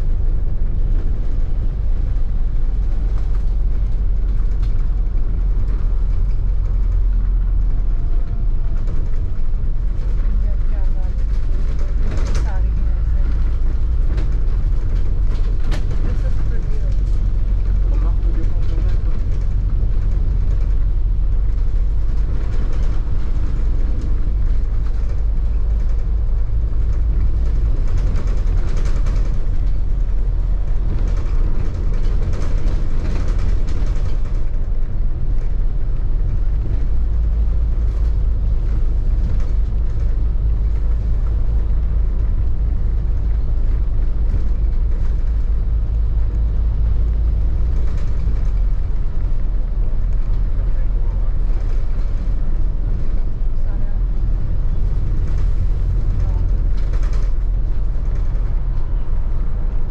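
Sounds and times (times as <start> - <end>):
bus engine and tyres droning: 0.0 - 59.9
wind over open bus deck: 0.0 - 59.9.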